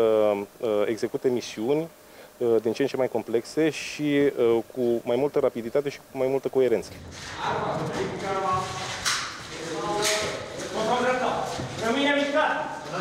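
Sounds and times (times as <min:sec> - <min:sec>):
footsteps on concrete floor: 0:06.9 - 0:13.0.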